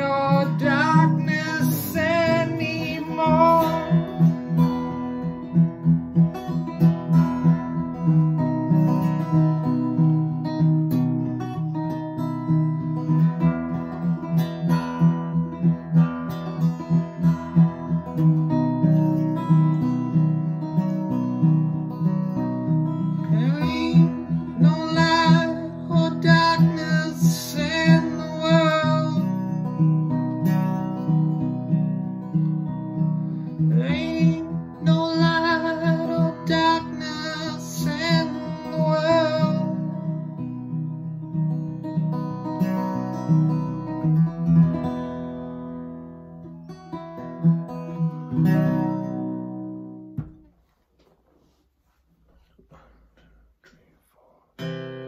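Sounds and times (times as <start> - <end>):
man singing: 0.0 - 4.4, 23.2 - 29.6, 33.6 - 40.2
acoustic guitar strumming: 0.0 - 50.7, 54.6 - 55.0.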